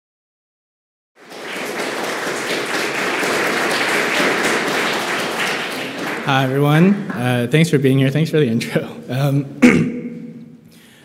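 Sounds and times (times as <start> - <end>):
audience applauding: 1.2 - 7.5.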